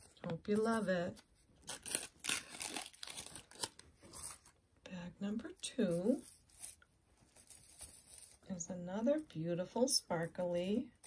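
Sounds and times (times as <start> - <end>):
plastic bag crinkling: 1.6 - 4.5.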